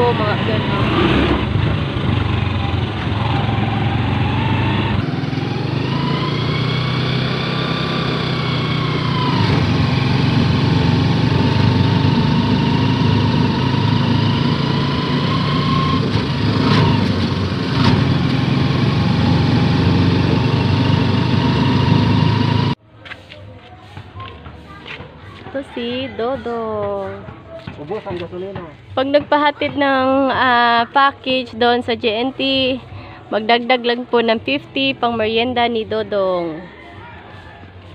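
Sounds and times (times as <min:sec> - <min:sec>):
motorcycle engine whining: 0:00.0 - 0:22.8.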